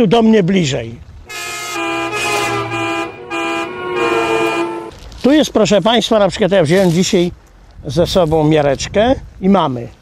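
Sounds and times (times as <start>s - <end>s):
car horn honking: 1.3s - 4.9s.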